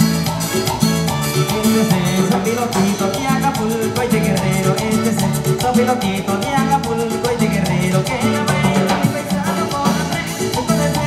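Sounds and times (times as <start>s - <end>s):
bass and guitar lines: 0.0s - 11.0s
latin dance music over loudspeakers: 0.0s - 11.0s
quick percussion beat: 0.0s - 11.0s.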